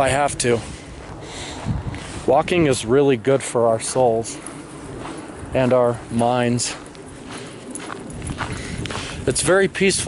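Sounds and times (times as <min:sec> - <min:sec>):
footsteps walking: 0:00.0 - 0:10.0
outdoor background noise: 0:00.0 - 0:10.0.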